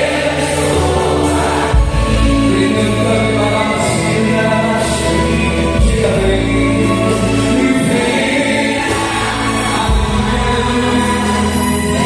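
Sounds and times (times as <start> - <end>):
group singing gospel: 0.0 - 12.0.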